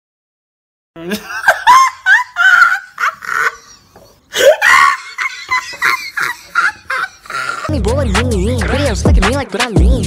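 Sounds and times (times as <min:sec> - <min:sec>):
woman laughing: 0:01.0 - 0:07.9.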